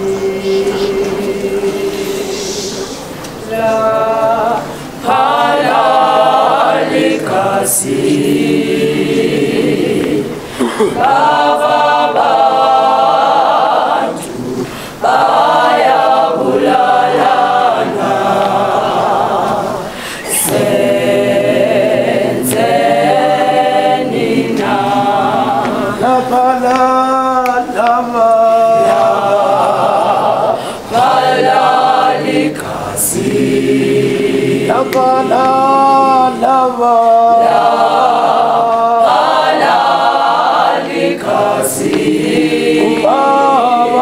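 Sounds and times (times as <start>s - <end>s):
choir singing a cappella: 0.0s - 44.0s.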